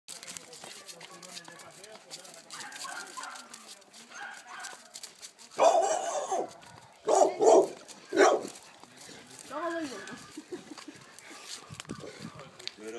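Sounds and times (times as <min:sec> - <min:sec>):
dog barking: 0:02.5 - 0:03.5, 0:04.1 - 0:04.9, 0:05.6 - 0:08.6.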